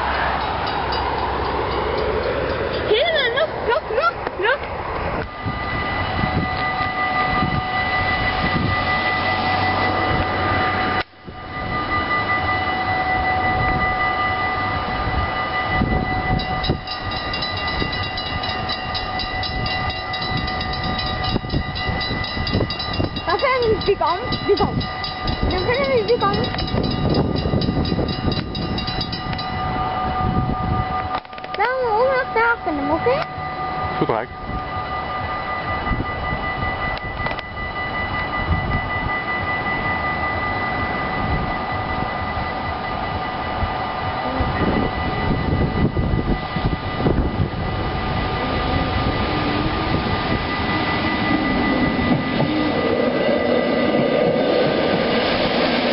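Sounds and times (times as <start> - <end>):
steady high hum: 0.0 - 55.9
train passing at speed: 0.0 - 55.9.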